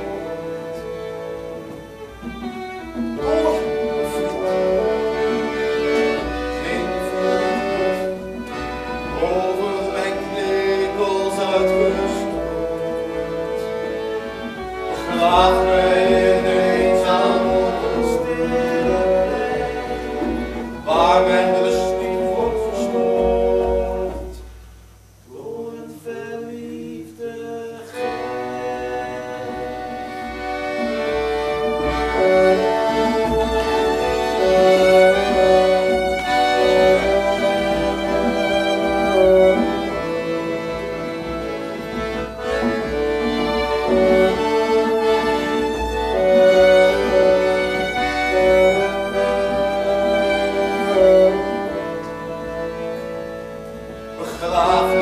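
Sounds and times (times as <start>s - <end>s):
folk band with violins and accordion: 0.0s - 55.0s.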